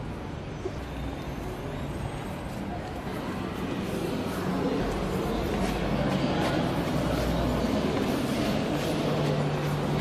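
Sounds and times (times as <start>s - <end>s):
low rumble of city traffic: 0.0s - 10.0s.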